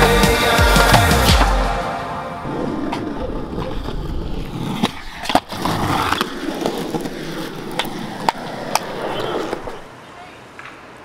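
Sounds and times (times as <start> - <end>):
skateboard wheels rolling on concrete: 2.4 - 11.0
skateboard clacking on concrete: 2.9 - 11.0.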